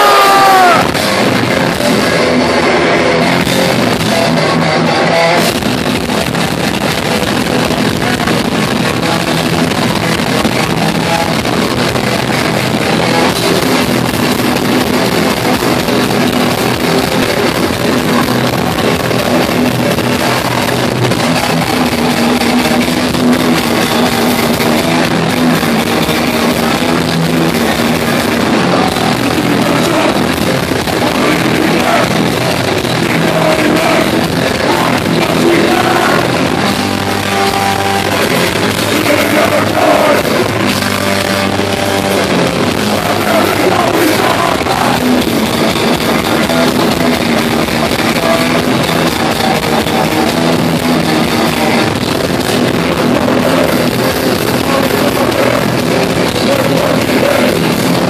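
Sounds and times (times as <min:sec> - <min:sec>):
bass guitar: 0:00.0 - 0:58.0
distorted electric guitars: 0:00.0 - 0:58.0
drums: 0:00.0 - 0:58.0.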